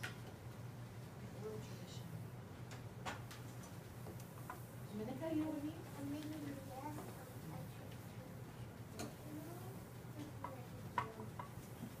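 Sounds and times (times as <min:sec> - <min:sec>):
faint murmur of voices: 0:04.9 - 0:12.0.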